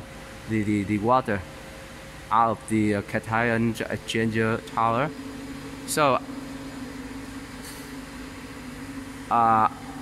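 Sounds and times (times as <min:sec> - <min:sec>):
machinery motors and pumps humming: 0:00.0 - 0:10.0.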